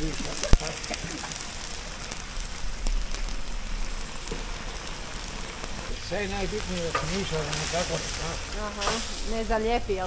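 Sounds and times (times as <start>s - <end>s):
pork fat crackling and hissing: 0.0s - 10.0s.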